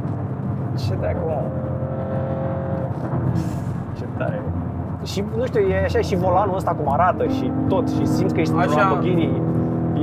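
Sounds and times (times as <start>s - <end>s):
car engine drone in cabin: 0.0s - 10.0s.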